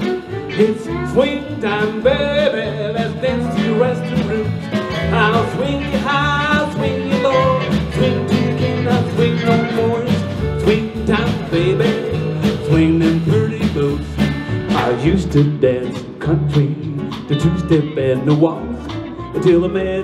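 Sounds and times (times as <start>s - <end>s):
fiddle: 0.0s - 12.5s
acoustic and electric guitars: 0.0s - 20.0s
drums: 0.0s - 20.0s
upright bass: 0.0s - 20.0s.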